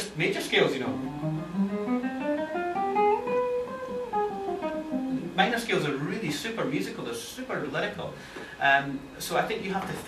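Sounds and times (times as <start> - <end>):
classical guitar playing a scale: 0.9 - 5.5.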